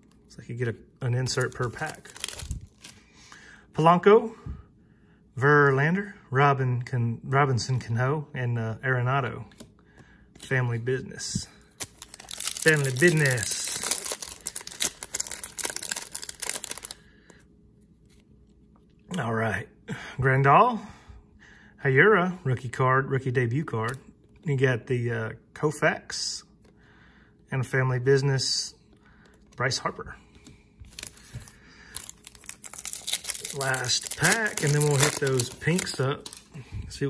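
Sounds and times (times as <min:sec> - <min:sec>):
cards clicking and rustling: 0:01.2 - 0:03.0, 0:11.8 - 0:17.0, 0:30.3 - 0:36.5
foil wrapper crinkling and tearing: 0:01.3 - 0:03.0, 0:11.7 - 0:17.0, 0:30.9 - 0:36.5.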